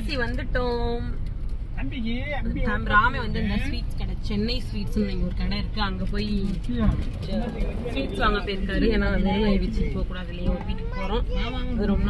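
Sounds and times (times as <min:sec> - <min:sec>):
car cabin rumble: 0:00.0 - 0:12.0
people speaking: 0:01.8 - 0:12.0.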